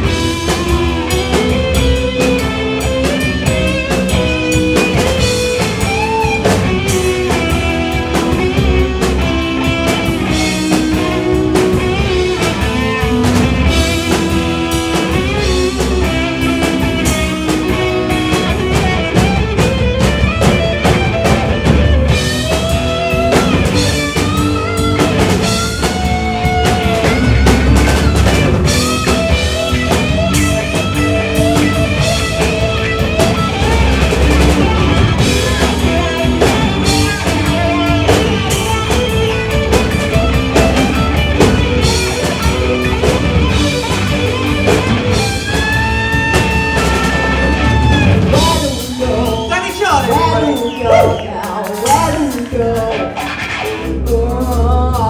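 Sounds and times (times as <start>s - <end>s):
gliding electric guitar lead: 0.0s - 55.0s
live rock band playing: 0.0s - 55.0s.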